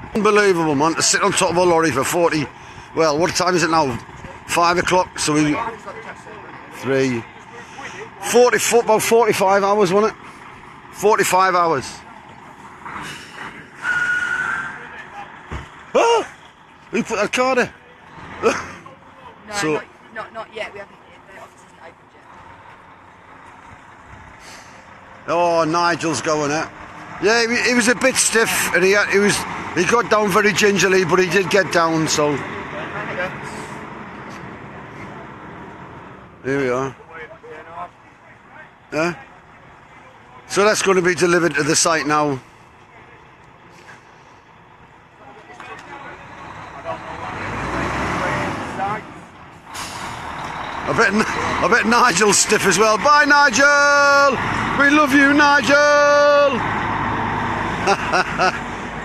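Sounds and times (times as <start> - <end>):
traffic noise: 0.0 - 59.0
air brakes hissing: 12.9 - 14.9, 24.3 - 24.9, 33.4 - 33.9, 49.7 - 50.4
lorry engine running: 15.0 - 59.0.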